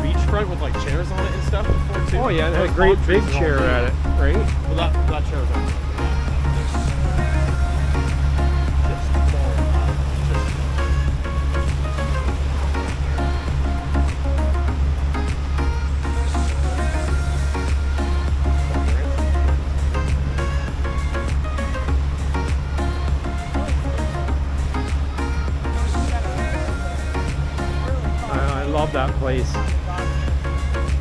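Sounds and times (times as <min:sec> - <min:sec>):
low drone: 0:00.0 - 0:31.0.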